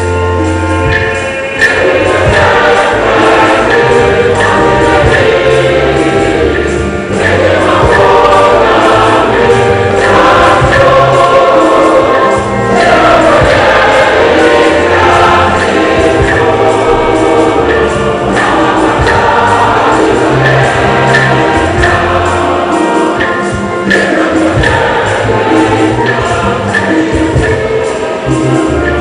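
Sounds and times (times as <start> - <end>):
choir singing a hymn: 0.0 - 29.0
instrumental accompaniment with bass: 0.0 - 29.0.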